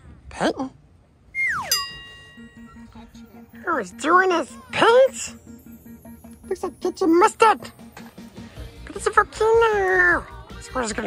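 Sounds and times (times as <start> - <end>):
descending whistle: 1.3 - 3.0
low fast-pulsing musical tone: 1.4 - 7.6
bright chime ringing: 1.6 - 3.0.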